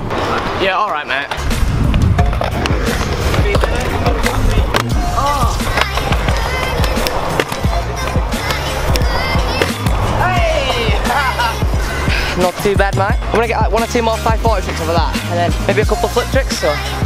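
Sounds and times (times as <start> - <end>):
scooter wheels rolling on concrete: 0.0 - 15.0
background music with low beat: 1.3 - 17.0
scooter deck clacking on ramps: 5.6 - 9.9.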